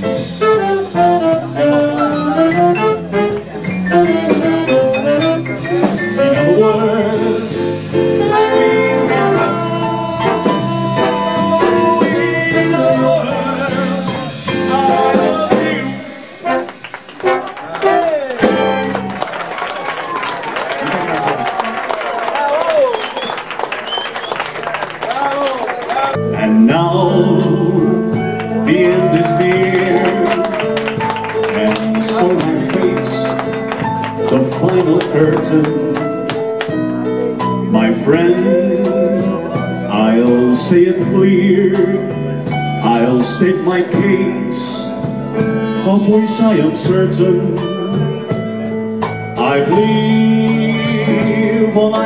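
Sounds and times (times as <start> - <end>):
big band playing swing: 0.0 - 52.0
audience applause and cheering: 13.6 - 26.2, 28.4 - 37.5.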